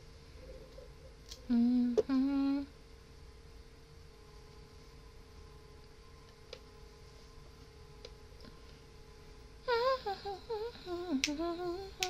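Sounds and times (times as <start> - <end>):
woman humming: 1.4 - 2.8, 9.6 - 12.0.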